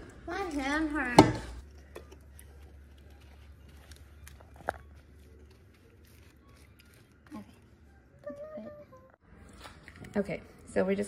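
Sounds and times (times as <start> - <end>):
spatula working sticky mixture: 0.4 - 8.4.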